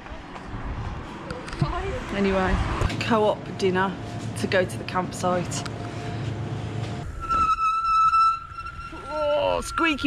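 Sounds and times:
bicycle brake squealing: 7.1 - 10.0.

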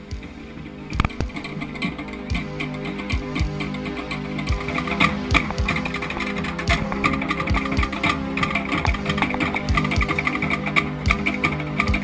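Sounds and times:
steady pitched tones: 0.0 - 12.0
wooden slit log drums: 0.0 - 12.0.

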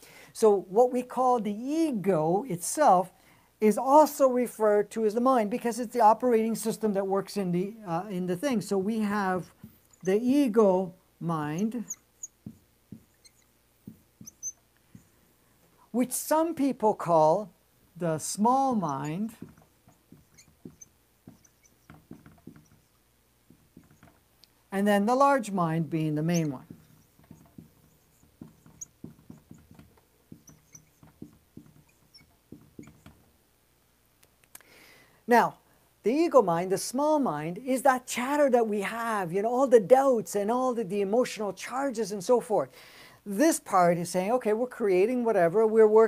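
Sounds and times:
faint marker squeaks: 9.4 - 10.5, 11.4 - 15.2, 18.6 - 24.2, 26.0 - 33.3
marker writing on whiteboard: 11.5 - 15.2, 18.4 - 24.3, 26.0 - 33.3.

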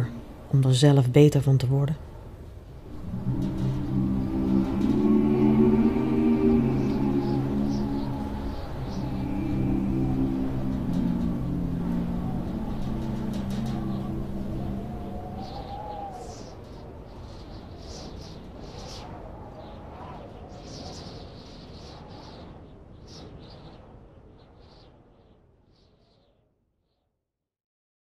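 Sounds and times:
low rumble: 0.0 - 0.6, 2.6 - 16.7
choir singing long chords: 2.8 - 16.6.

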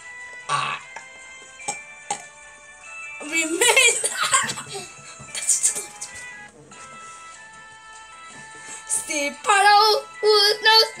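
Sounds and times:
soft background music: 0.0 - 11.0
child singing: 9.4 - 11.0.

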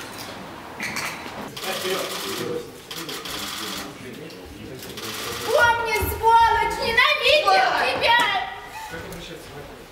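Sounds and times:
crowd voices: 1.5 - 9.9.

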